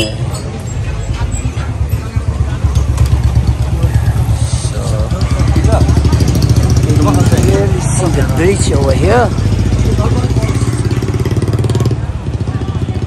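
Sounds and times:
street noise: 0.0s - 13.0s.

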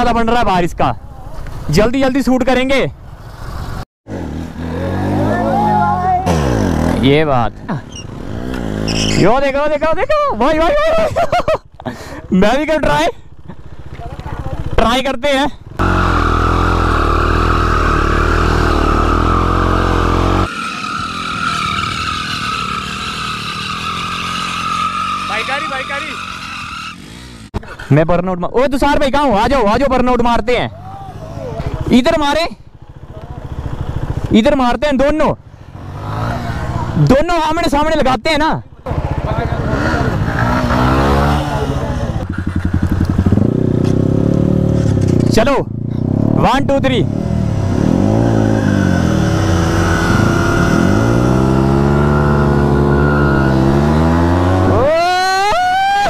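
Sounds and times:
motorcycle engine at high revs: 3.1s - 9.8s, 12.0s - 27.7s, 30.9s - 37.2s, 38.7s - 55.5s
tyre squealing: 4.7s - 7.0s, 7.7s - 9.8s, 15.8s - 27.5s, 47.6s - 56.0s.

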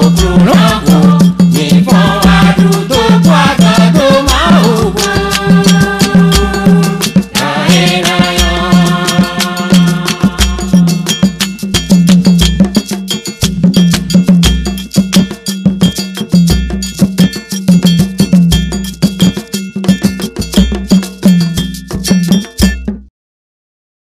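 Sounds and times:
low drum beats: 0.0s - 23.1s
metal bell strikes: 0.0s - 23.1s.

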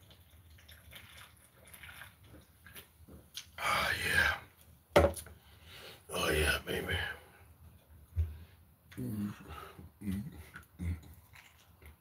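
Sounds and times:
can knocking on surface: 5.0s - 5.2s.

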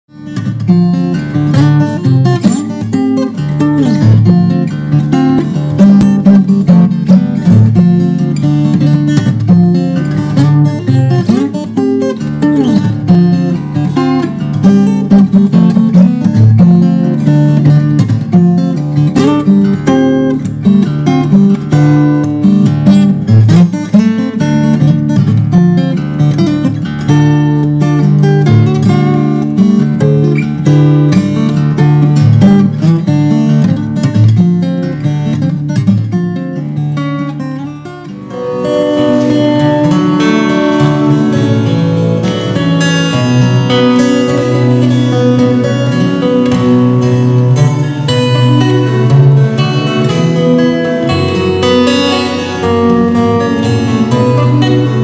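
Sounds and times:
acoustic guitar playing: 0.1s - 55.0s.

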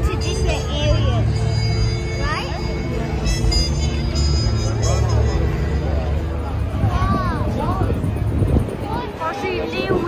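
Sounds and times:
crowd chatter: 0.0s - 10.0s
steady low rumble: 5.8s - 10.0s.

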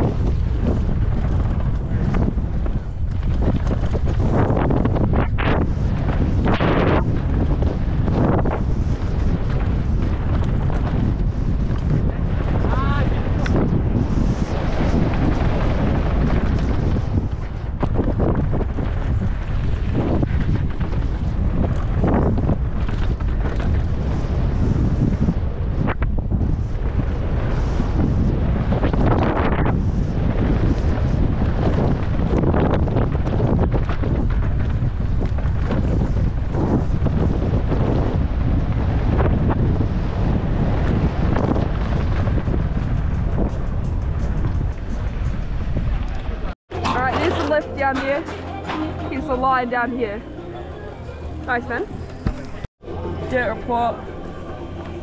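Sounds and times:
wind buffeting microphone: 0.0s - 55.0s
tyres rolling on dirt: 46.0s - 49.4s.

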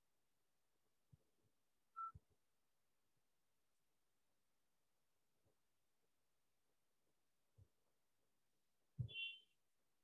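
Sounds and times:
faint high beep: 2.0s - 2.2s.

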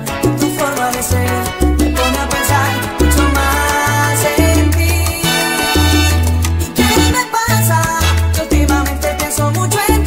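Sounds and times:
salsa music: 0.0s - 10.0s.

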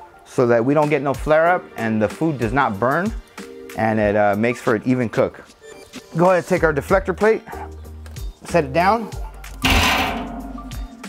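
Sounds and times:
background music: 0.0s - 11.0s
metal plate clanging in drum: 9.6s - 11.0s.

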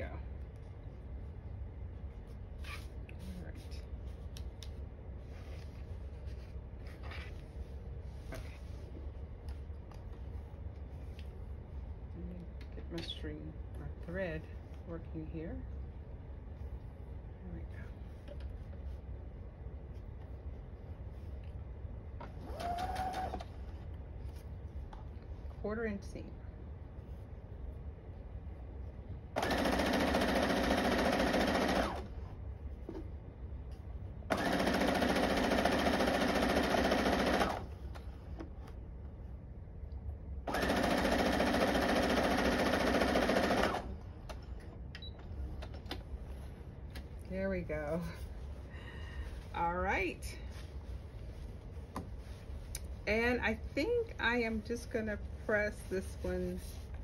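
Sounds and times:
sewing machine motor whine: 29.4s - 32.0s, 34.3s - 37.6s, 40.5s - 43.9s
sewing machine stitching: 29.4s - 32.1s, 34.3s - 37.6s, 40.5s - 43.9s.

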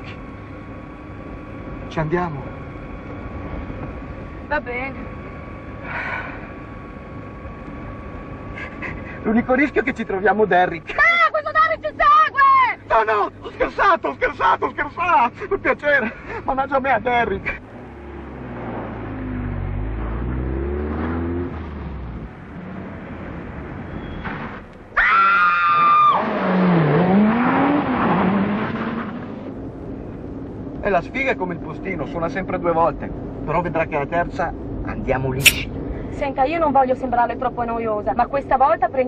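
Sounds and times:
car engine and road noise: 0.0s - 39.0s
car engine accelerating: 17.6s - 23.7s, 26.1s - 29.6s
brief rush of sound: 35.4s - 35.7s.

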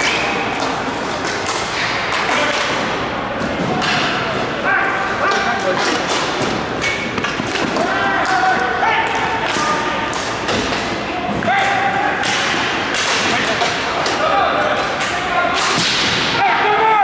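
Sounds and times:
sticks and ball clacking on court: 0.0s - 4.5s, 5.2s - 16.2s
players shouting: 1.6s - 17.0s.

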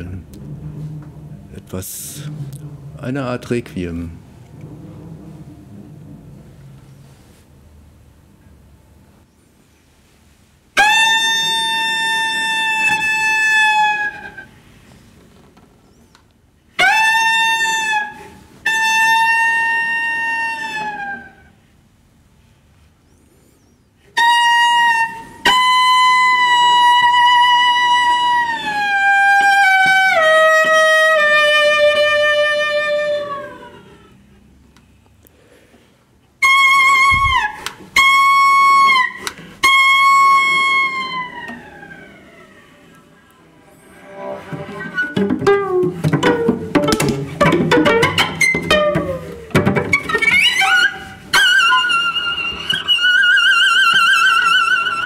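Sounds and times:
cello bowed slowly: 0.0s - 7.7s, 16.8s - 21.6s, 24.2s - 34.4s, 36.4s - 55.0s.

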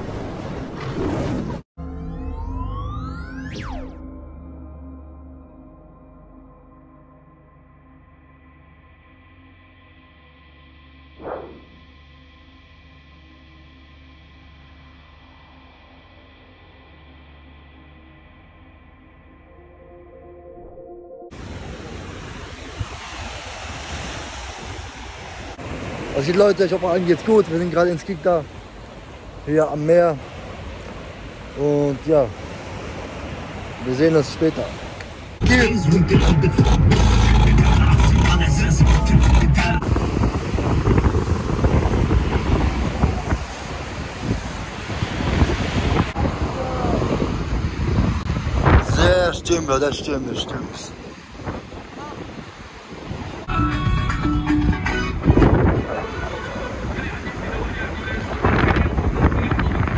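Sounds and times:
sea waves breaking on beach: 0.0s - 1.7s, 21.3s - 35.4s, 39.8s - 53.5s, 55.2s - 59.9s
music: 11.8s - 21.3s, 35.4s - 39.8s, 53.5s - 55.7s
wind rumbling on microphone: 36.1s - 59.9s.

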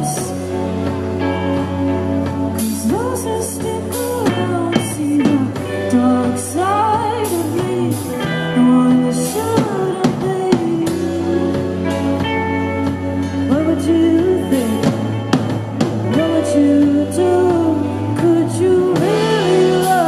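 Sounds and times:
woman singing: 0.0s - 1.6s, 2.2s - 20.0s
bass: 0.0s - 20.0s
drum kit: 0.0s - 20.0s
electric guitars: 0.0s - 20.0s
keyboard: 0.0s - 20.0s.

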